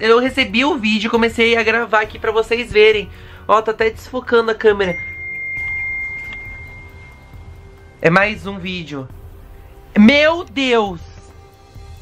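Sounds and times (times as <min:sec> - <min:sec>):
quiet background music: 0:00.0 - 0:12.0
high ringing chime tone: 0:04.8 - 0:08.0.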